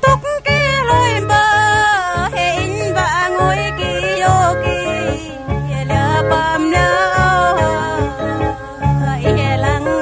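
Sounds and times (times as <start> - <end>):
backing accompaniment: 0.0 - 10.0
high solo voice singing: 0.0 - 10.0.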